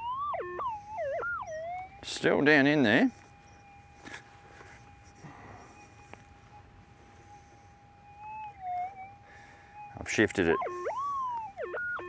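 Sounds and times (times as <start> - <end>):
metal detector steady tone: 0.0 - 12.0.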